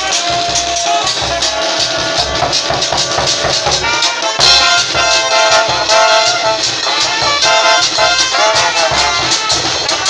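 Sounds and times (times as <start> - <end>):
brass instruments playing: 0.0 - 10.0
drum beat: 0.0 - 10.0
shaken metal percussion: 0.0 - 10.0.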